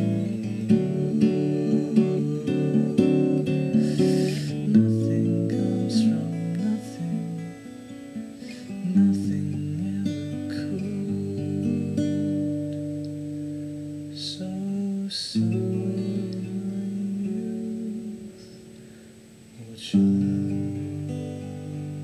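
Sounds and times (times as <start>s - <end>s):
acoustic guitar chords: 0.0s - 22.0s.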